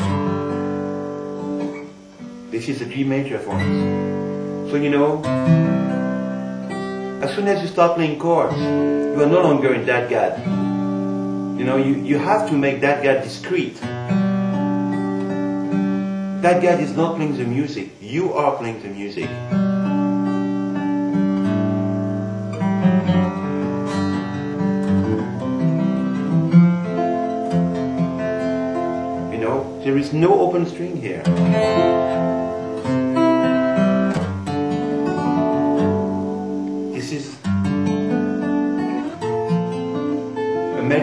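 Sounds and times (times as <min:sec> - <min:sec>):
acoustic guitar chord ringing: 0:00.0 - 0:41.0.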